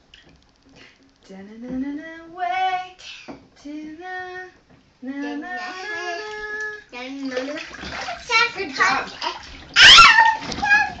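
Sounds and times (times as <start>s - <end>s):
bath water: 5.6s - 11.0s
toddler crying out: 9.8s - 11.0s.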